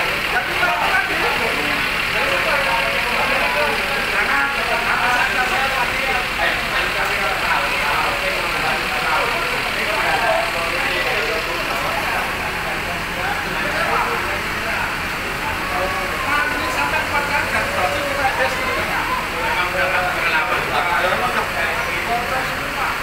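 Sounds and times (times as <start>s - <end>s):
diesel engine idling: 0.0s - 23.0s
people talking indistinctly: 0.0s - 23.0s.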